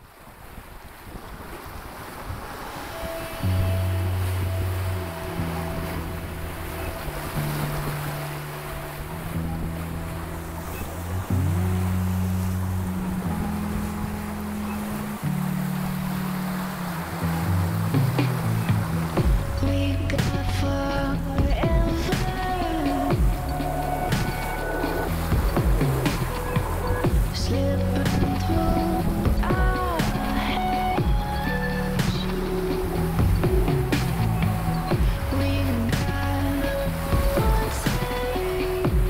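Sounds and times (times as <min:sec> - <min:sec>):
sea water rushing and splashing: 0:00.0 - 0:39.0
wind on microphone: 0:00.0 - 0:39.0
background music with bass notes: 0:03.1 - 0:39.0.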